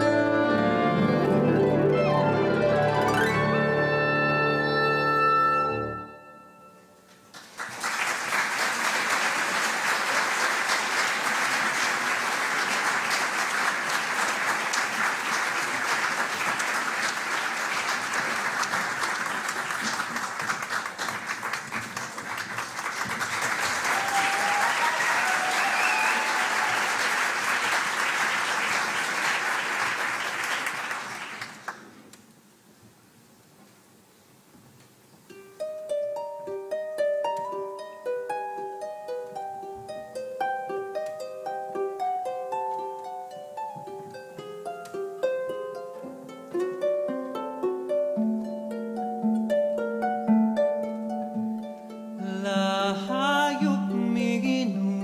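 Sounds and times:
audience applauding: 7.3 - 32.1.

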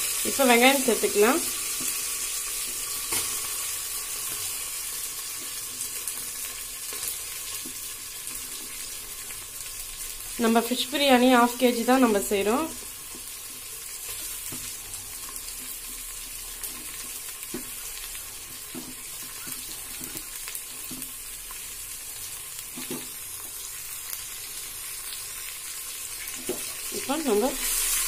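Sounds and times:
onions sizzling in a pot: 0.0 - 28.0.

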